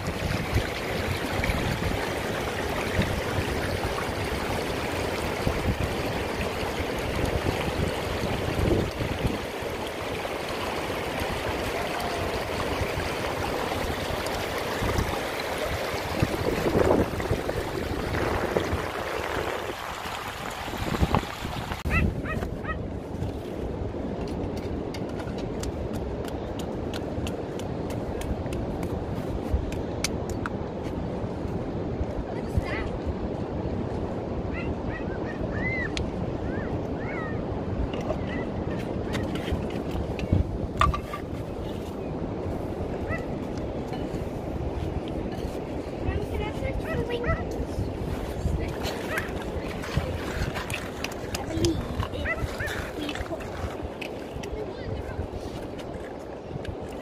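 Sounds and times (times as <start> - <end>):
water trickling over pebbles: 0.0 - 21.8, 48.1 - 54.6.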